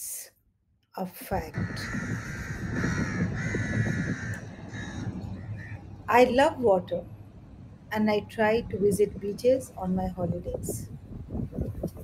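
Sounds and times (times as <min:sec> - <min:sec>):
wind: 0:00.0 - 0:12.0
bird calling: 0:01.5 - 0:06.0.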